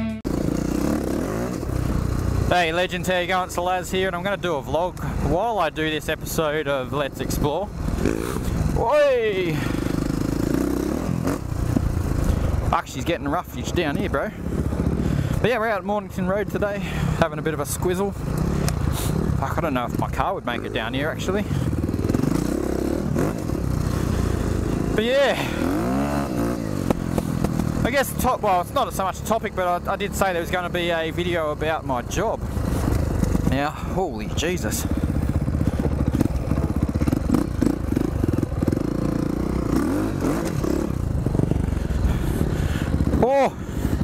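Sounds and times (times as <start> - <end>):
guitar music: 0.0 - 0.2
dirt bike engine running: 0.0 - 44.0
rattling from rough ground: 0.3 - 44.0.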